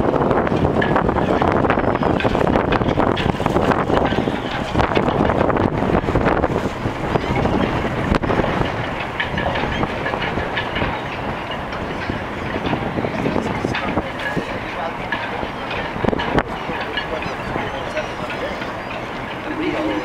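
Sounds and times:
wind rumbling on microphone: 0.0s - 20.0s
people talking: 12.0s - 20.0s.

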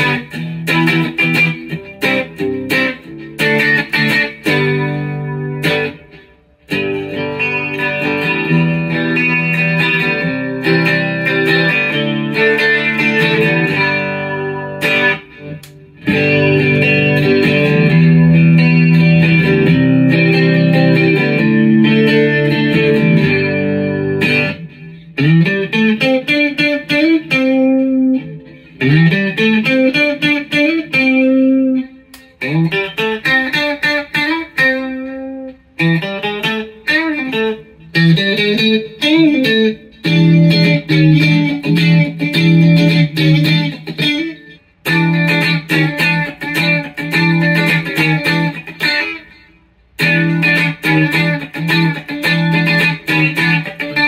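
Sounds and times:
electric guitar: 0.0s - 54.0s.

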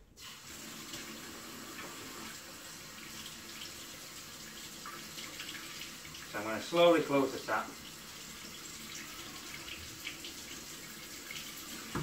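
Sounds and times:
tap running into a steel sink: 11.8s - 12.0s.

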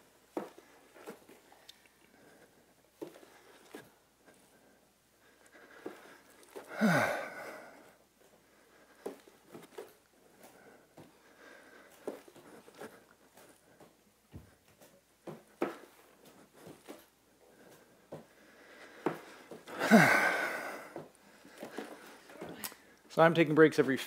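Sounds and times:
person breathing: 0.4s - 23.1s
light thuds on hardwood floor: 14.3s - 14.6s.

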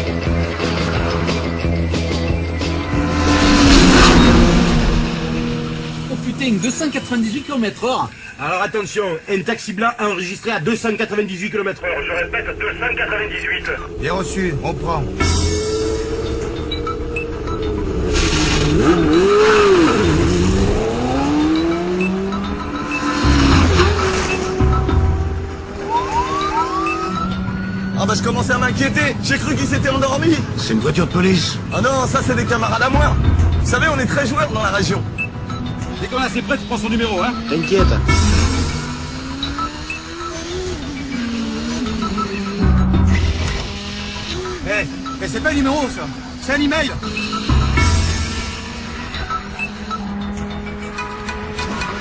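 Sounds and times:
rock music: 0.0s - 7.9s, 11.8s - 29.8s
low vehicle drone: 0.0s - 8.4s, 11.7s - 52.0s
car passing at high speed: 0.6s - 7.3s
police siren winding up: 25.7s - 27.5s.

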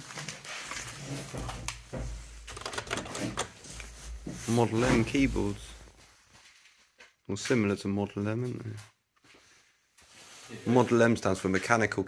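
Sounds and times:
mechanical keyboard clicks: 2.5s - 3.5s.

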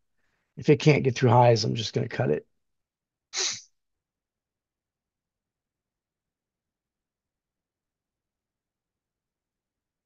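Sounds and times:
sneeze: 3.4s - 3.7s.

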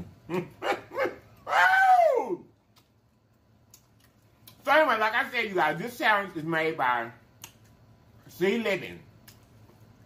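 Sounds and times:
man laughing: 0.3s - 1.2s.

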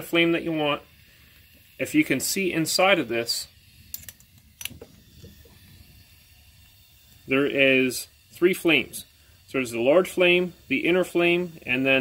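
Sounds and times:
torch flame hissing: 0.0s - 12.0s.

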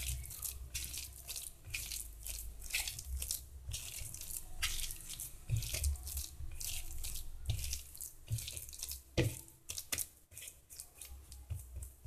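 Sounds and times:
hand squishing wet dough: 0.0s - 12.0s.

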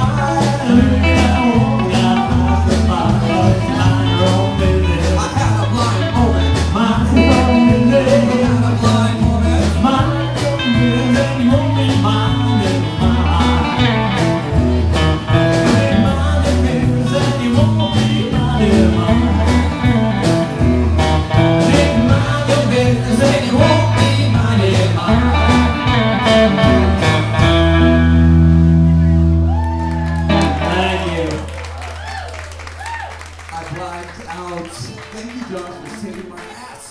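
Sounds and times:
acoustic guitar: 0.0s - 31.4s
electric guitar: 0.0s - 33.5s
bass guitar: 0.0s - 34.2s
drums: 0.0s - 36.9s.

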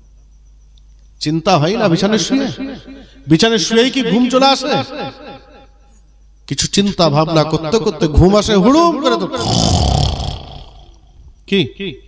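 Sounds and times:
man chanting: 1.5s - 5.4s, 6.7s - 10.0s.

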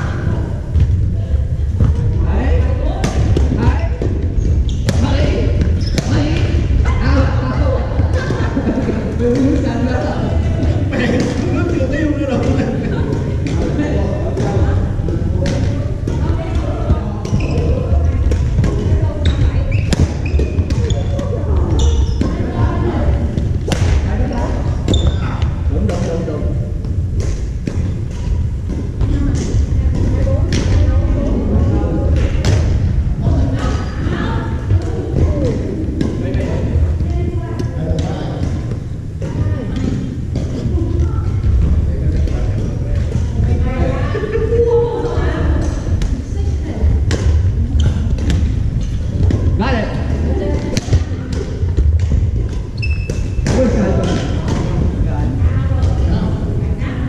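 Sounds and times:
low rumble of hall: 0.0s - 57.0s
players' voices: 0.0s - 57.0s
rackets hitting shuttlecock: 50.5s - 54.8s.

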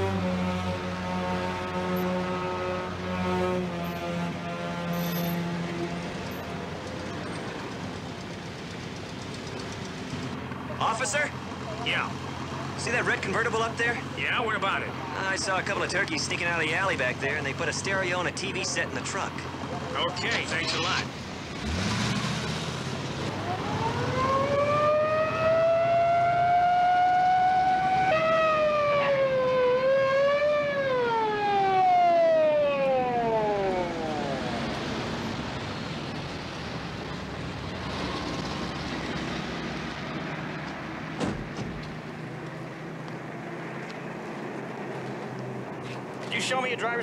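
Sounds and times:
low traffic hum: 0.0s - 47.0s
police siren wailing: 23.2s - 35.4s.

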